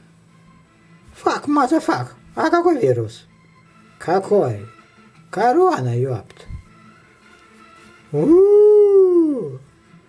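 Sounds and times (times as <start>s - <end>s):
person howling: 8.1s - 9.6s.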